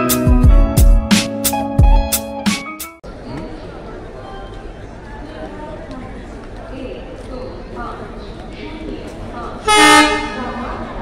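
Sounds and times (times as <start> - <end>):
crowd chatter: 3.0 - 11.0
train horn blast: 9.6 - 10.6.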